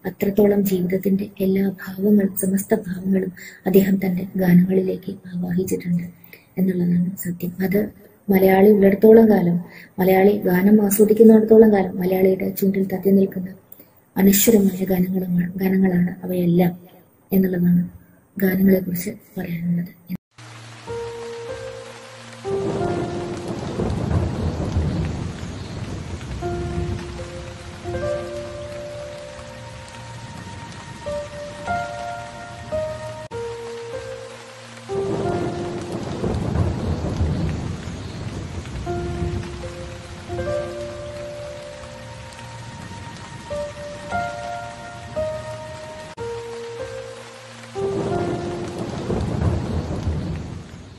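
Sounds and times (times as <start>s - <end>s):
steady rain: 0.0s - 50.9s
slow instrumental melody: 20.6s - 25.1s, 26.3s - 37.3s, 38.8s - 49.5s
rolling thunder: 22.4s - 33.4s, 34.9s - 46.2s, 47.7s - 50.9s.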